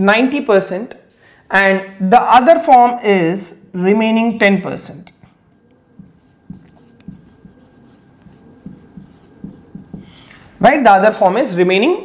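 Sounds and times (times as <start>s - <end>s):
marker writing on whiteboard: 5.2s - 10.3s.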